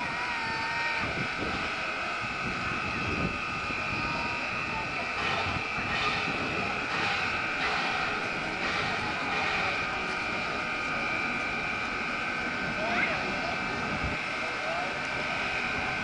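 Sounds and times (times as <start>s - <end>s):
diesel locomotive engine: 0.0s - 16.0s
high whine: 0.0s - 16.0s.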